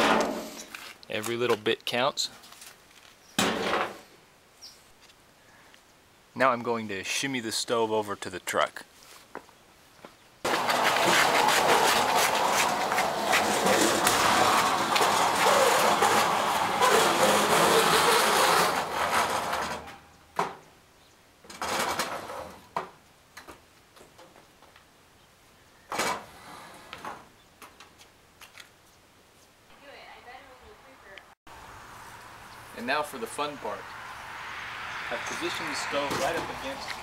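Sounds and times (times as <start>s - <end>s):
metal scraping on concrete: 0.0s - 1.0s, 10.5s - 20.1s, 21.5s - 22.6s, 35.0s - 37.0s.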